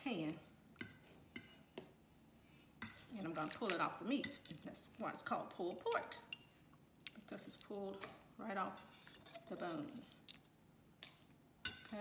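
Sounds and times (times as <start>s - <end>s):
metal fork clinking on pot: 11.6s - 12.0s.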